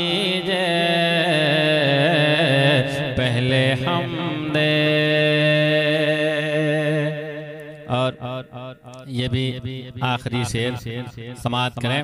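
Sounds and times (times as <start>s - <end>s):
man singing slow melody: 0.0s - 10.8s.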